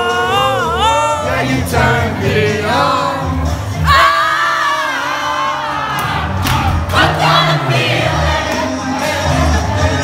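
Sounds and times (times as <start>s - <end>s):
bass music: 0.0s - 10.0s
crowd singing along: 0.0s - 10.0s.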